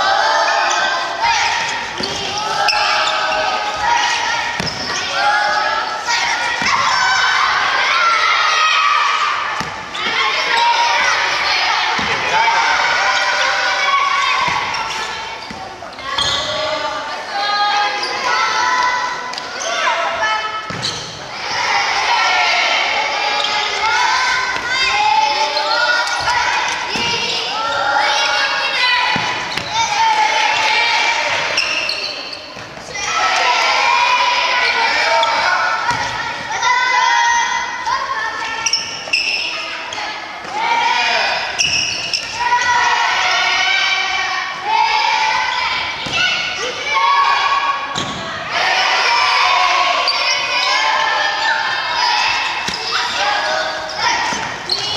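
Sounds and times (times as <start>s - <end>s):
children shouting: 0.0s - 54.9s.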